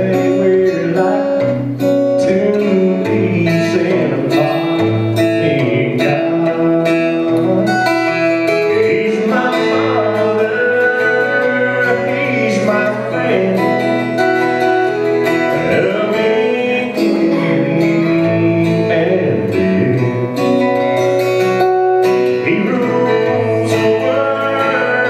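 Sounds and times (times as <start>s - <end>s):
man singing: 0.0s - 20.7s, 22.3s - 25.0s
acoustic guitar strumming: 0.0s - 25.0s.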